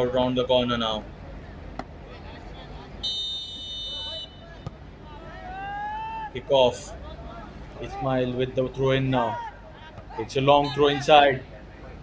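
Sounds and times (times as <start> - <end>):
faint open-field background noise: 0.0 - 12.0
referee's whistle blast: 3.0 - 4.4.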